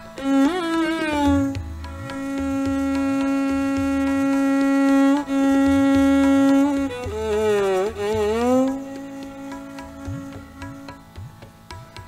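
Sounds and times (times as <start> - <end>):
violin bowed note sliding in pitch: 0.0 - 11.1
low tabla strokes: 0.0 - 12.0.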